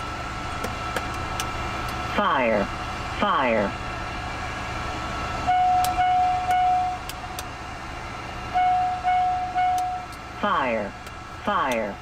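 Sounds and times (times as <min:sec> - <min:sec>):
steady cockpit hum: 0:00.0 - 0:12.0
warning tone beeping: 0:05.4 - 0:07.0, 0:08.5 - 0:10.9.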